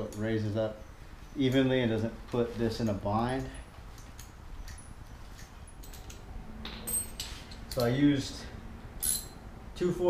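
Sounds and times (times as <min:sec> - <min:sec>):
small clicks and handling noise: 0:02.8 - 0:08.0.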